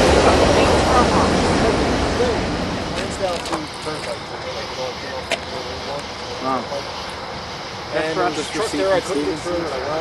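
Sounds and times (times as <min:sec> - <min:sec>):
electric train approaching: 0:00.0 - 0:10.0
faint voices: 0:00.0 - 0:10.0.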